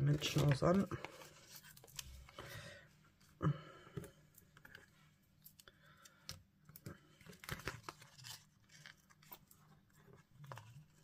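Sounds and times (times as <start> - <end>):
paper rustling: 0.0 - 2.6, 7.1 - 11.0
crackly clicks of peeling foam: 6.7 - 11.0.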